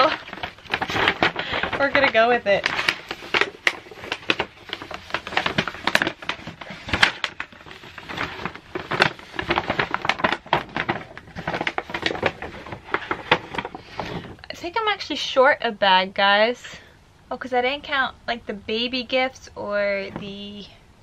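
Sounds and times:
paper bag rustling and crinkling: 0:00.0 - 0:14.4.

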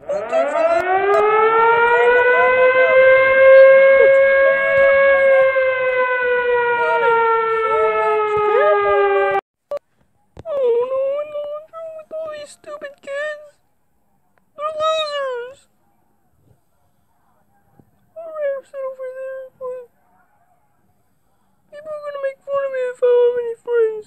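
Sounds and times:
siren-like wail: 0:00.0 - 0:09.4.

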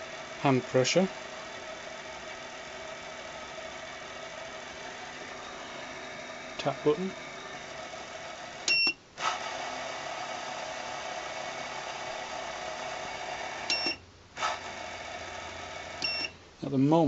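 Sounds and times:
spindle motor running: 0:00.0 - 0:16.3
short controller beep: 0:16.0 - 0:16.3.

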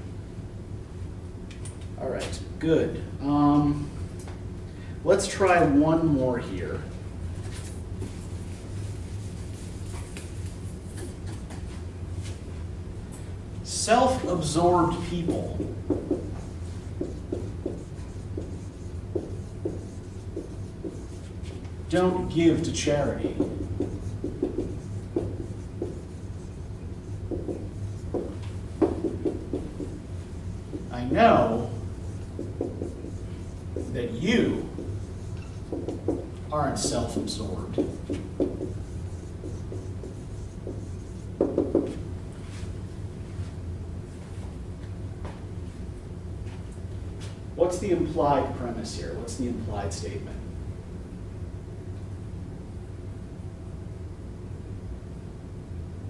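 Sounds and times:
low room hum: 0:00.0 - 0:56.0
marker squeaking on whiteboard: 0:15.2 - 0:30.1, 0:30.7 - 0:42.0.

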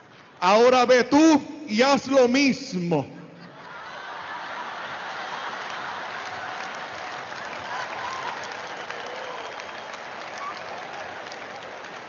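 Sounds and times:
audience applauding: 0:04.0 - 0:12.0.

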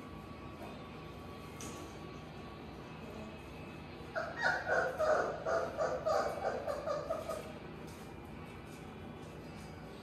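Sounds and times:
puppy whining yelps: 0:04.2 - 0:07.6.

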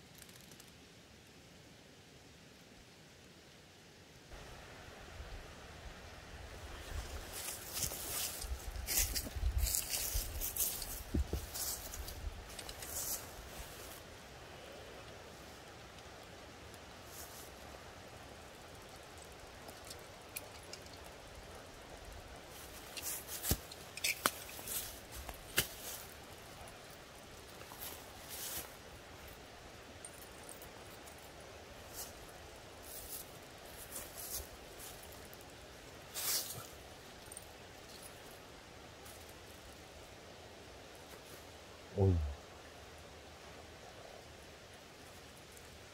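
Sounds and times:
dry leaves rustling and crackling: 0:06.8 - 0:14.1, 0:21.8 - 0:29.5, 0:31.8 - 0:38.4.

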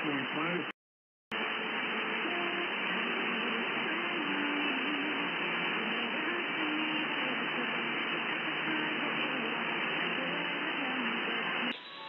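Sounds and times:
radio static hiss: 0:00.0 - 0:00.7, 0:01.3 - 0:11.8
faint wavering radio melody: 0:01.4 - 0:12.0.

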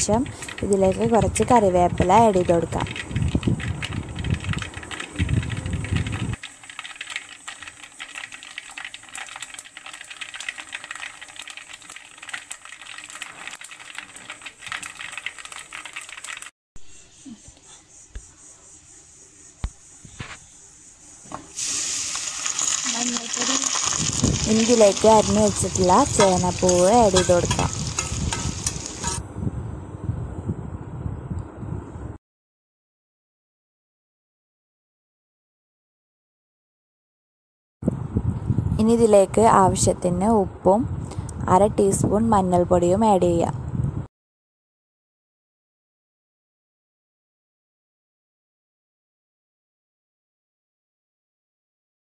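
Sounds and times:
person speaking: 0:00.0 - 0:03.0, 0:22.8 - 0:23.8, 0:24.4 - 0:27.9
hot oil sizzling and crackling: 0:00.0 - 0:16.5, 0:21.3 - 0:29.2
stirring scrapes and clicks: 0:00.1 - 0:16.5, 0:22.4 - 0:29.2
food sizzling in a pan: 0:21.5 - 0:29.2.

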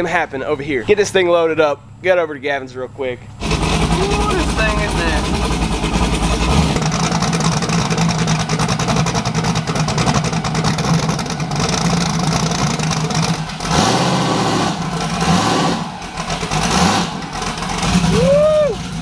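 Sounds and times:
car engine revving: 0:03.3 - 0:19.0.

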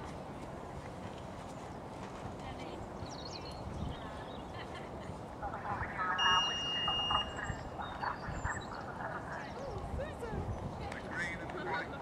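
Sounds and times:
distant voices: 0:02.5 - 0:12.0
high-pitched tone: 0:06.0 - 0:08.7.

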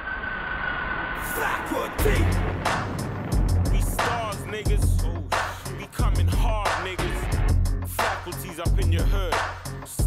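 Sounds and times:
hip-hop instrumental beat: 0:01.3 - 0:10.0.

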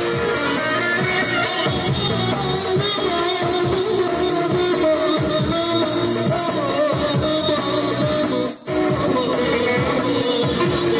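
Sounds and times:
electronic keyboard melody: 0:00.0 - 0:10.9.

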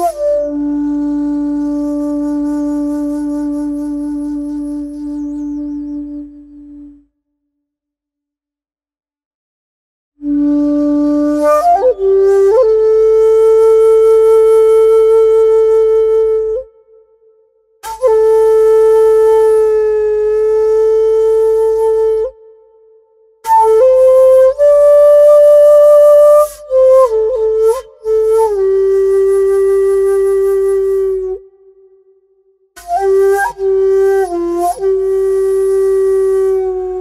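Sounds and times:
bamboo flute long note: 0:00.0 - 0:07.2, 0:10.2 - 0:37.0.

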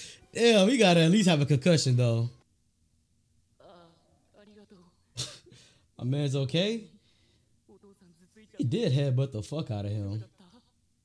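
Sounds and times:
man clearing throat: 0:05.2 - 0:05.5.

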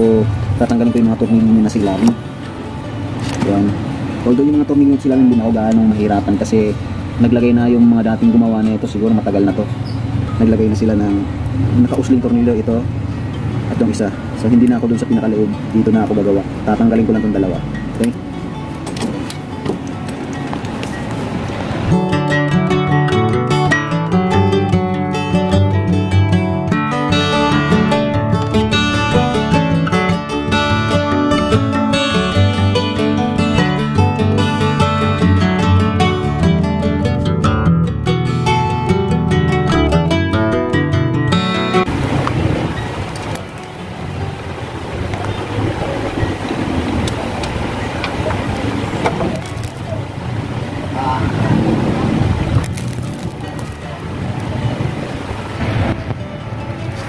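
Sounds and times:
even background noise: 0:00.0 - 0:23.7, 0:40.8 - 0:57.0
plucked guitar-like music: 0:00.0 - 0:57.0.

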